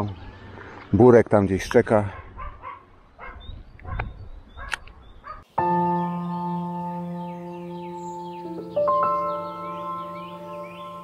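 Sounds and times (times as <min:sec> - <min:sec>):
dog barking: 0:02.1 - 0:05.5
birds chirping: 0:02.6 - 0:11.0
ambient music sustained chord: 0:05.6 - 0:11.0.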